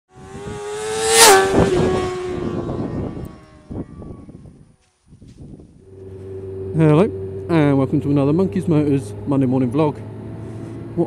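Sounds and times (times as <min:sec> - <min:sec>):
vehicle passing by fast: 0:00.1 - 0:04.5, 0:05.8 - 0:11.0
faint low engine hum: 0:05.5 - 0:11.0.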